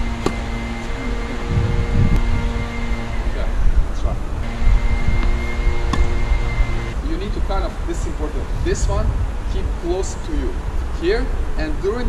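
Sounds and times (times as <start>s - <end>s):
tennis ball bouncing: 0.0s - 0.5s, 5.1s - 6.3s
mechanical hum: 0.0s - 9.6s.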